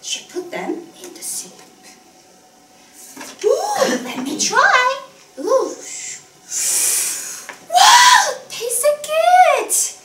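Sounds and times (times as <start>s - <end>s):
mouth-made hiss: 5.8s - 7.6s.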